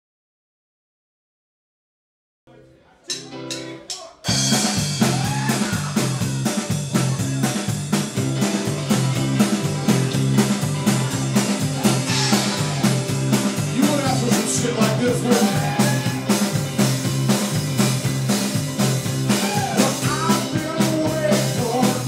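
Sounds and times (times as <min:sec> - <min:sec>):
drum kit: 0:03.1 - 0:22.0
electric guitar: 0:03.1 - 0:22.0.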